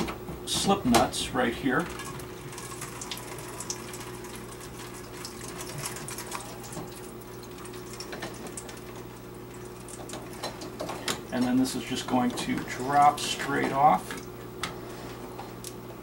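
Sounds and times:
water trickling into steel bowl: 0:01.9 - 0:10.3.

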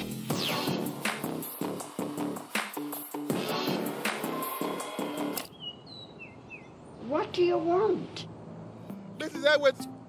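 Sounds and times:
music from portable stereo: 0:00.0 - 0:05.5
bird chirping: 0:05.4 - 0:07.3.

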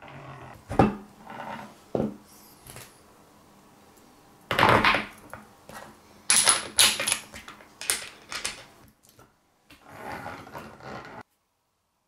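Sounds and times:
metal parts clinking and knocking: 0:06.3 - 0:08.7
rough rasping noise: 0:09.8 - 0:11.2.

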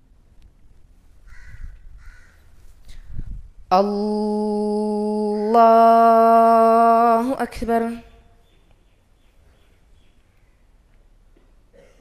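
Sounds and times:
crow cawing: 0:01.3 - 0:02.5.

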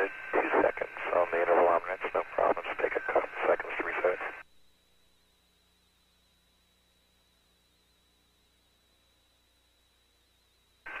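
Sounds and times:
speech over radio: 0:00.0 - 0:04.4.

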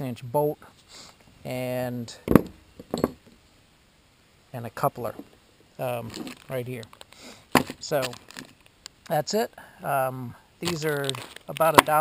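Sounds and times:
steel pieces knocking on wood: 0:02.3 - 0:03.3.

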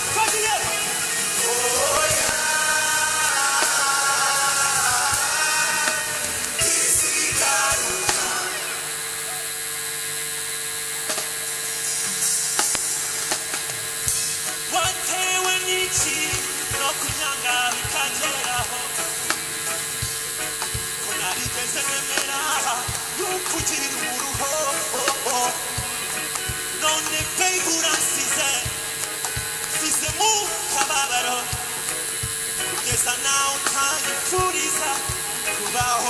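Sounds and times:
live band playing: 0:00.0 - 0:08.8, 0:12.0 - 0:36.0
voices singing: 0:00.0 - 0:09.7, 0:14.6 - 0:36.0.

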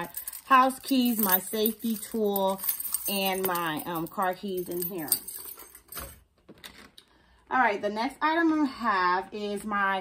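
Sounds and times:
keys jangling: 0:00.0 - 0:06.2.

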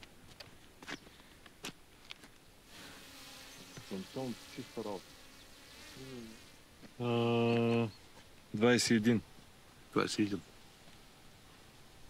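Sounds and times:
drone propellers buzzing: 0:02.7 - 0:06.6.

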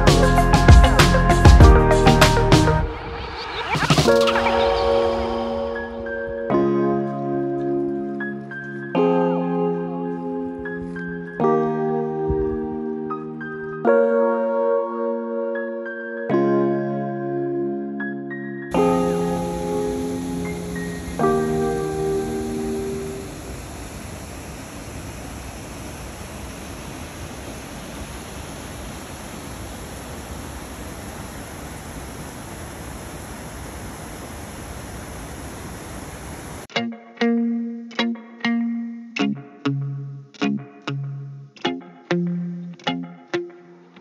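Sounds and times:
plucked guitar music: 0:18.7 - 0:23.2, 0:36.7 - 0:44.0
waterfall rushing over rocks: 0:18.8 - 0:36.7.

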